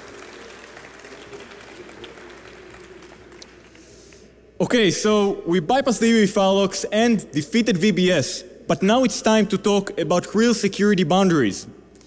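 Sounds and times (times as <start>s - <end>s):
audience applause: 0.0s - 3.9s
steady low hum: 0.0s - 12.0s.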